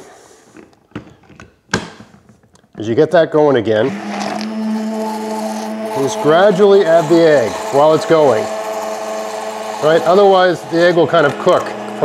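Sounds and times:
blender tapping glass jug: 5.6 - 12.0
blender thunk on jug: 11.1 - 12.0.

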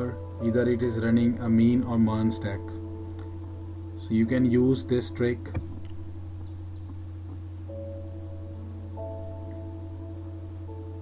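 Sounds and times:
soft mallet-like background music: 0.0 - 6.6, 7.6 - 11.0
steady low hum: 0.0 - 11.0.

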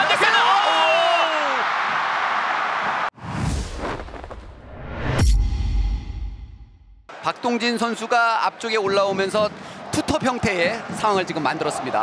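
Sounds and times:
stadium crowd noise: 0.0 - 3.1, 7.1 - 12.0
rising swoosh: 3.2 - 6.8.

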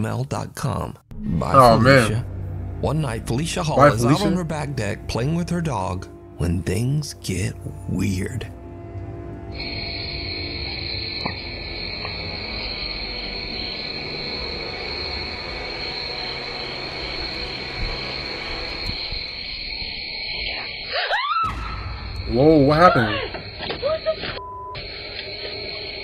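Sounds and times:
low hum: 1.1 - 20.8
night insects chirring: 1.6 - 26.0
rising squeaky glides: 9.3 - 21.6.

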